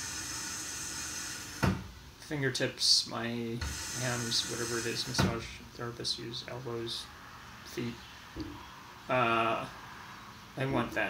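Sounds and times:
soft steady hiss: 0:00.0 - 0:11.0.

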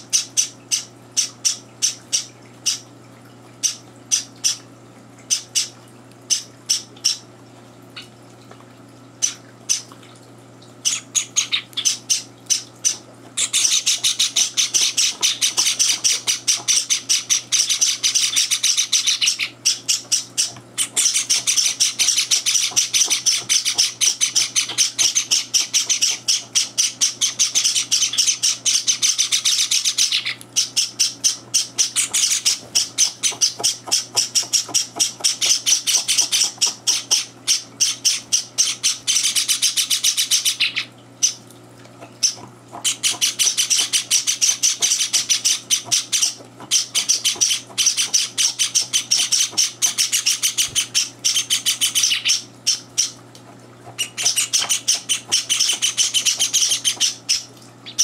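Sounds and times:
bird chicks chirping rapidly: 0:10.8 - 0:41.4, 0:42.2 - 0:53.2, 0:53.9 - 0:58.0.

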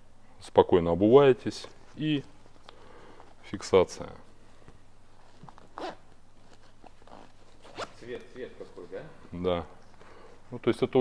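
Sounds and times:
boot zipper zip: 0:05.7 - 0:06.0, 0:07.0 - 0:08.0.

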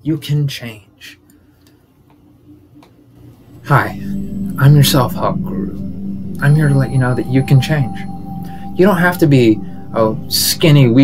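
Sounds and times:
faint room hum: 0:00.0 - 0:06.5.

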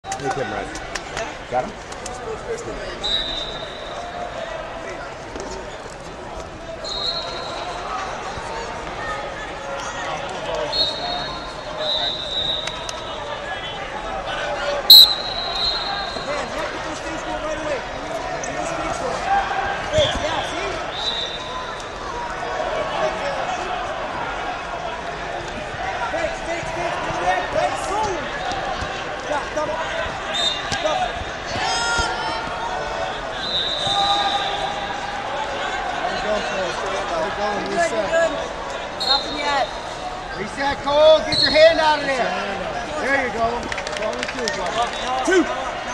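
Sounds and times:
crowd chatter in a gym: 0:00.0 - 0:45.9
referee's whistle blast: 0:03.0 - 0:04.0, 0:10.7 - 0:13.0, 0:14.9 - 0:16.4, 0:20.9 - 0:21.6, 0:33.4 - 0:34.9, 0:39.0 - 0:39.7
short whistles: 0:03.0 - 0:04.0, 0:10.7 - 0:13.0, 0:14.9 - 0:16.3, 0:20.9 - 0:21.6, 0:33.4 - 0:34.9, 0:39.0 - 0:39.8.

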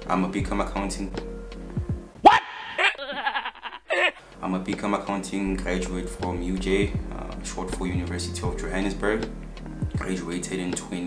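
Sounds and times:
rising whoop: 0:02.2 - 0:03.0
high quavering cry: 0:02.2 - 0:03.2.

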